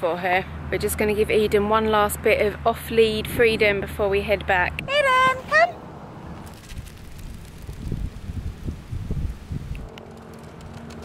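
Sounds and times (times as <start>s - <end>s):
wind buffeting microphone: 6.2s - 10.0s
dry grass rustling: 6.4s - 10.9s.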